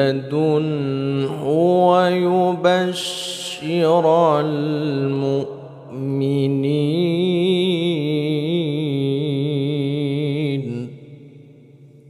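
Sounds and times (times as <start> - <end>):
man chanting recitation: 0.0 - 11.3.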